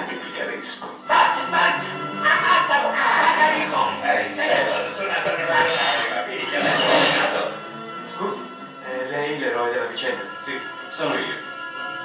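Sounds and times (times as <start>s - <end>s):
film music over loudspeakers: 0.0s - 12.0s.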